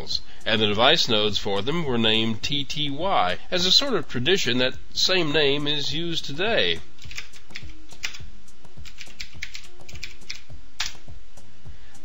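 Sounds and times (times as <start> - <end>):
computer keyboard keys clicking: 7.0 - 8.2, 8.8 - 11.0.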